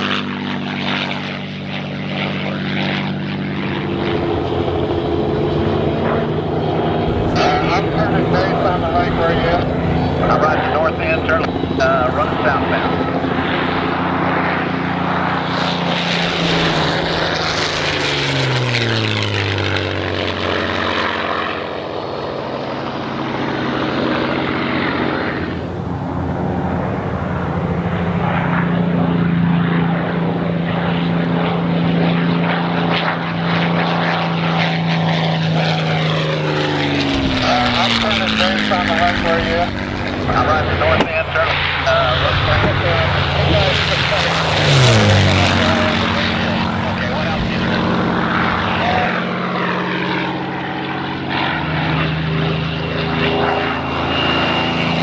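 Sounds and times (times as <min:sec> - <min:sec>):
propeller plane engine fly-by: 0:00.0 - 0:55.0.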